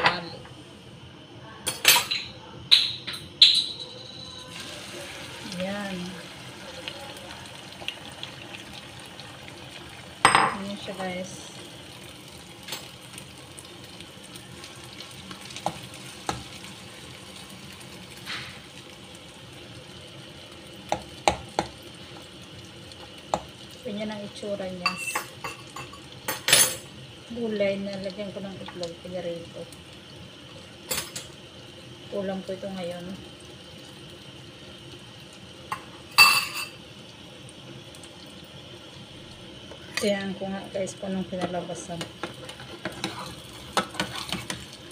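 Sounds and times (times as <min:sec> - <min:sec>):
food sizzling in a pan: 0:00.0 - 0:44.9.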